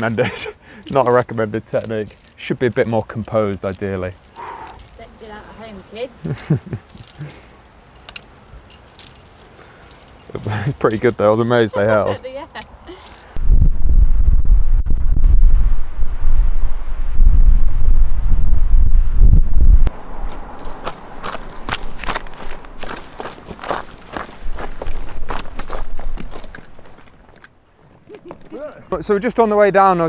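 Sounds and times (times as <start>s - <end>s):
short rustles and crunches: 0.0s - 13.4s
wind buffeting microphone: 13.3s - 27.0s.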